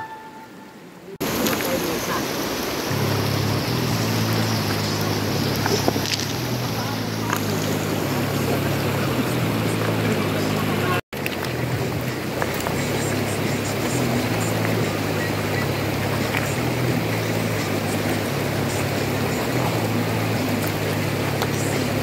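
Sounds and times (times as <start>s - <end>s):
river water rushing over rocks: 0.0s - 22.0s.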